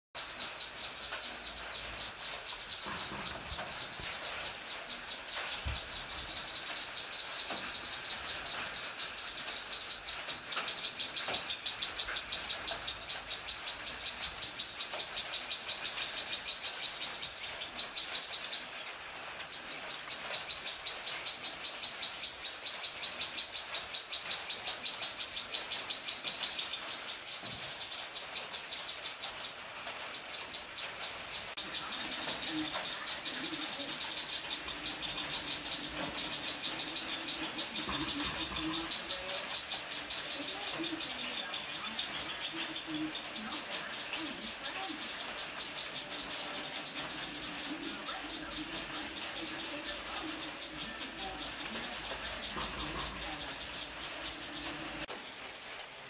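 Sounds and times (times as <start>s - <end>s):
bird high chirps: 31.3s - 55.1s.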